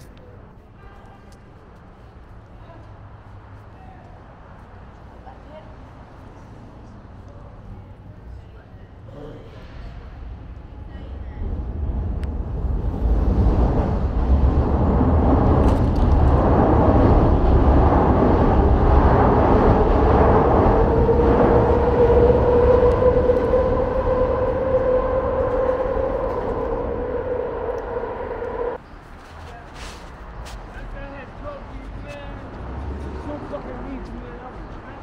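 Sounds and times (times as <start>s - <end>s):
elevated train rumbling overhead: 9.0s - 28.8s
train whine: 11.5s - 28.8s.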